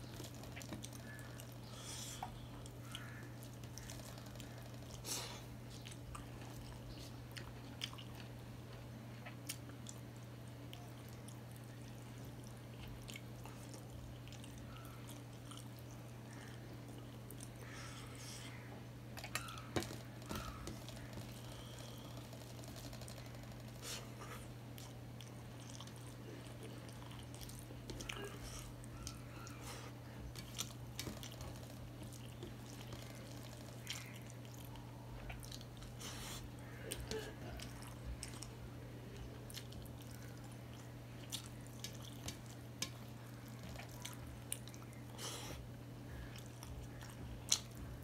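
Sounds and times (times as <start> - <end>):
man chewing food: 0.0 - 48.0
steady low hum: 0.0 - 48.0.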